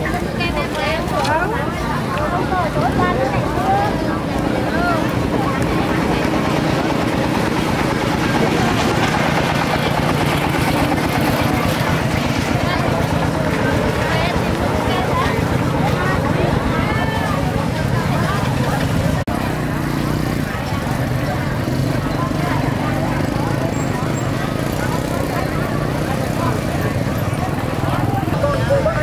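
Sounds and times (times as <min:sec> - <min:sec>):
motorbike engine running: 0:00.0 - 0:29.0
voices chattering: 0:00.0 - 0:29.0.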